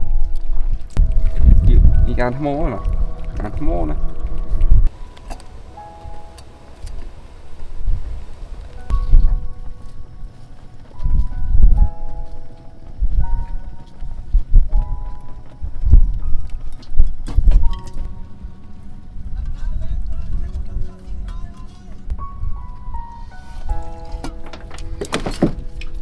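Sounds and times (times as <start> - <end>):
deep bass pulse: 0.0 - 10.3
slow melody of held notes: 0.0 - 26.0.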